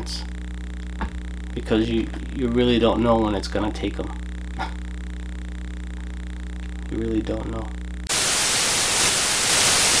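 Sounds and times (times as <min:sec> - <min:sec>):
television static hiss: 0:00.0 - 0:10.0.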